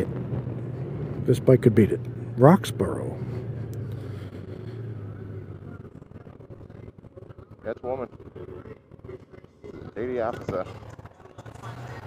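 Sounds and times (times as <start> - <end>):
motorcycle engine hum: 0.0 - 12.0.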